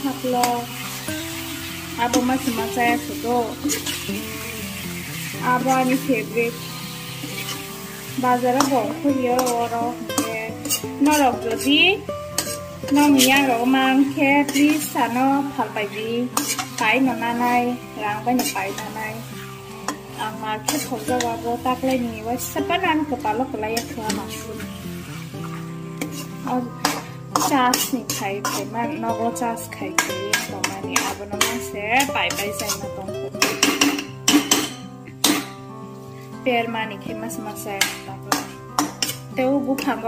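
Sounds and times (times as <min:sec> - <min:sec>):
chicken frying in a pan: 0:00.0 - 0:40.0
music with sung melody: 0:00.0 - 0:40.0
metal spatula scraping: 0:00.1 - 0:22.0, 0:22.8 - 0:28.8, 0:29.9 - 0:35.6, 0:37.8 - 0:39.9.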